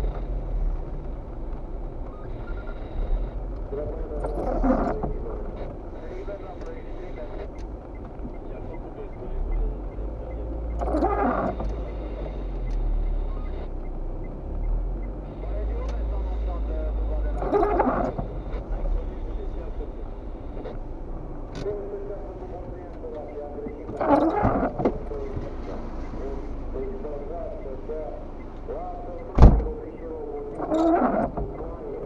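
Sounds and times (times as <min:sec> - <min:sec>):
engine and tyre rumble: 0:00.0 - 0:32.0
windshield wipers sweeping: 0:09.8 - 0:21.0, 0:21.6 - 0:32.0.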